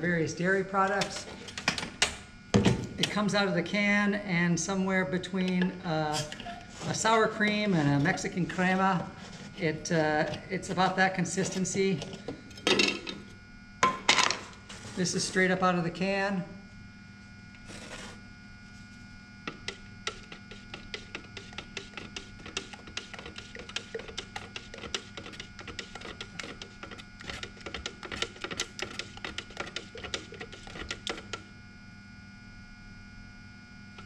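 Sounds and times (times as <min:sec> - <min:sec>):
steady electrical hum: 0:00.0 - 0:34.0
stick stirring paint in metal can: 0:05.4 - 0:12.2, 0:19.4 - 0:31.5.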